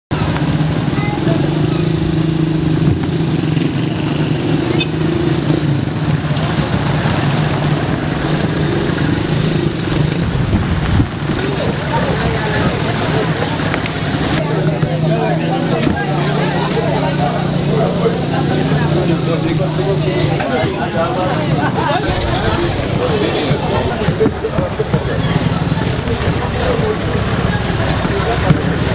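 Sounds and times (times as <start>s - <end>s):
people's voices: 0.1s - 28.9s
vehicle engine running: 0.1s - 28.9s.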